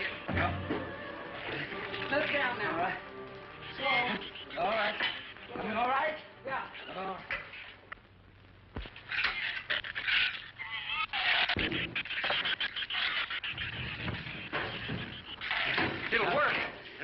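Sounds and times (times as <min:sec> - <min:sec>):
shrews squealing and chittering: 0:00.0 - 0:07.9, 0:08.8 - 0:17.0
scratching and scraping: 0:00.0 - 0:08.0, 0:08.8 - 0:17.0.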